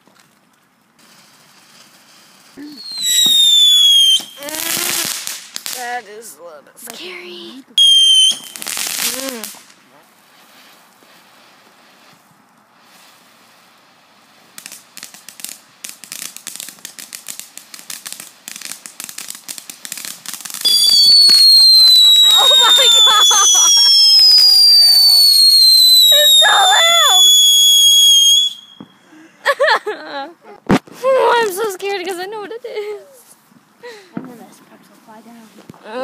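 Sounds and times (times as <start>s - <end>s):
fireworks crackling: 0.0s - 36.0s
shrill firework whistle: 2.6s - 5.1s, 7.8s - 9.5s, 20.6s - 29.0s.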